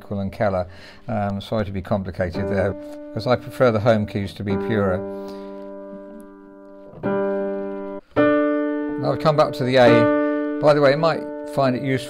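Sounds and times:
piano notes ringing: 0.0 - 12.0.

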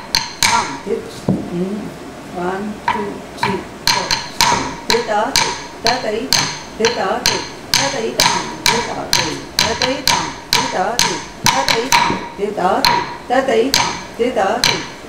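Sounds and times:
wooden stick striking wooden block: 0.0 - 1.4, 2.9 - 15.0.

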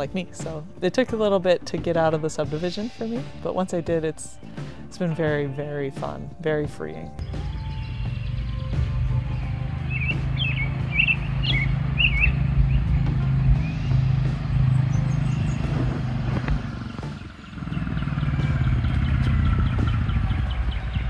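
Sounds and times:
birds chirping: 6.8 - 21.0
motorcycle engine running: 7.2 - 21.0.

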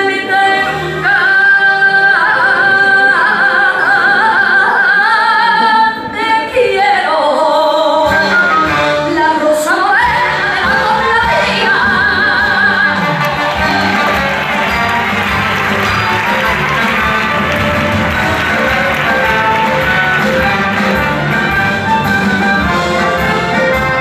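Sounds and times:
woman singing with vibrato: 0.0 - 14.6
orchestra playing: 8.0 - 24.0.

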